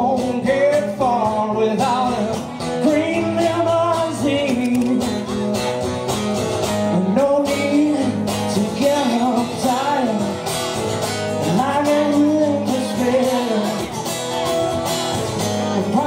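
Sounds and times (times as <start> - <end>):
man singing: 0.0 - 6.0, 6.6 - 14.4, 15.2 - 16.0
acoustic guitar strumming: 0.0 - 16.0.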